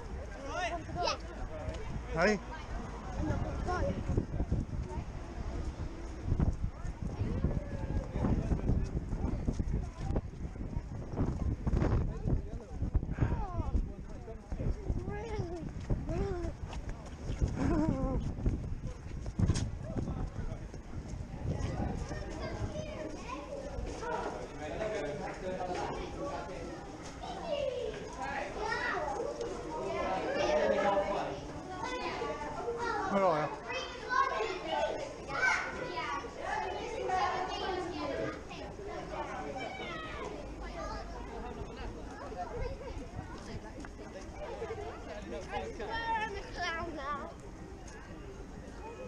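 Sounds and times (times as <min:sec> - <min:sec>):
people talking: 0:00.0 - 0:18.3, 0:19.8 - 0:49.0
children calling out and chattering: 0:00.0 - 0:49.0.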